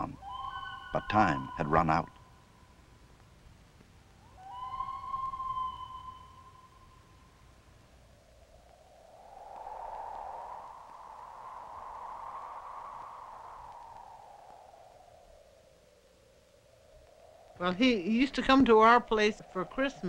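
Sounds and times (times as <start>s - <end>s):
loon wailing: 0.0s - 2.2s, 4.3s - 6.8s
wind rushing: 8.4s - 16.0s.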